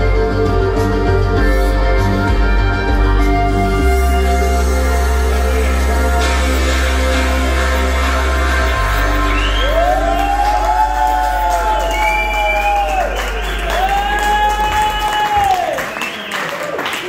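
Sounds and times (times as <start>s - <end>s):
audience cheering and whooping: 8.0s - 17.0s.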